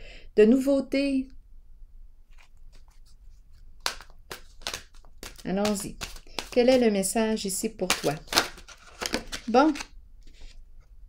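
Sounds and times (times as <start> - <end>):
cards clicking and tapping: 3.8 - 9.9.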